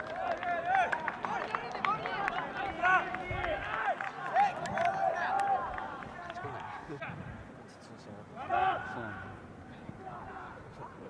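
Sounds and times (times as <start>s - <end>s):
young men shouting and cheering: 0.0s - 7.1s, 8.4s - 11.0s.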